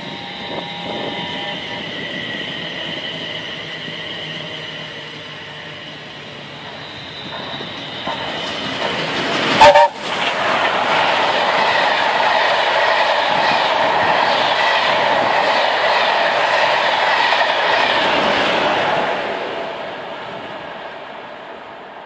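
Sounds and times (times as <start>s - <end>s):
train coaches roaring past: 0.0s - 22.0s
wheels clacking on rail joints: 6.7s - 18.4s
train chime whistle: 9.6s - 10.0s.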